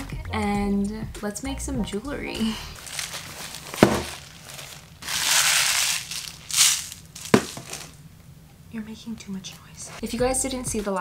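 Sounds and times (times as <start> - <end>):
plastic pouch crinkling: 2.8 - 8.0.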